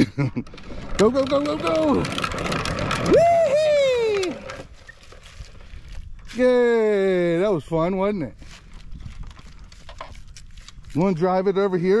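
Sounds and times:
person cheering: 3.0 - 4.6.

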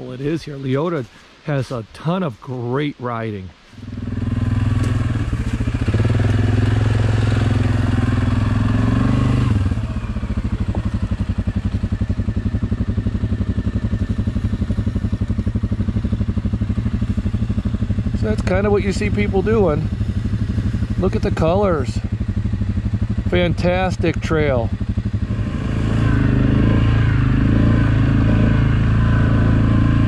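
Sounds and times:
atv engine running: 3.8 - 30.0.

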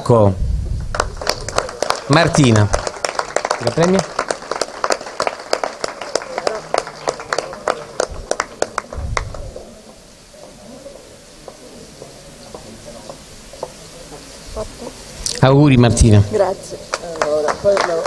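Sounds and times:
small group applauding: 0.9 - 10.0, 16.9 - 18.0.

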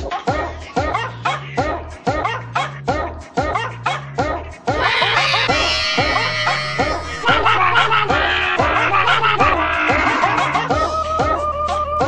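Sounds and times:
pitch-shifted dog bark melody: 4.8 - 10.6
synthesized bass line: 4.8 - 10.6.

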